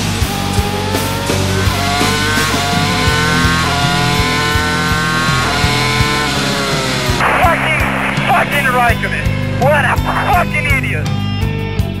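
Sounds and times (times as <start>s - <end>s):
racing car engine at full speed: 0.0s - 12.0s
rock music with drum beat: 0.0s - 12.0s.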